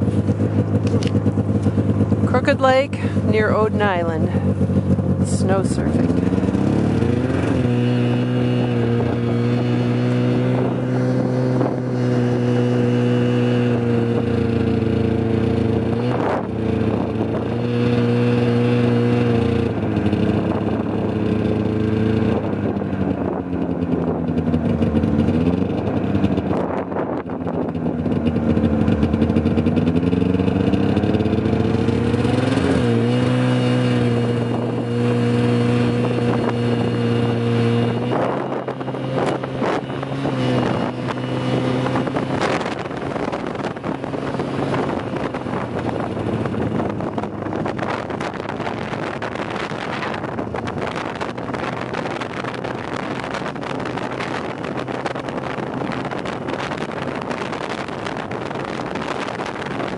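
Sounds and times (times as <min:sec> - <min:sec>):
vehicle engine running: 0:00.0 - 0:59.9
wind rushing over microphone: 0:00.0 - 0:59.9.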